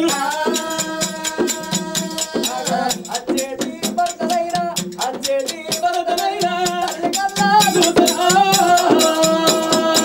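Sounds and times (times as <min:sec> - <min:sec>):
hand drum beat: 0:00.0 - 0:10.0
men singing wavering lines: 0:05.9 - 0:10.0.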